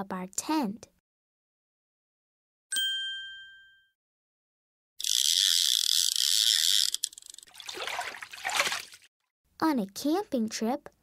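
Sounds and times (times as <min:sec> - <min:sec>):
bell-like chime: 0:02.7 - 0:04.0
water splashing: 0:07.5 - 0:09.1.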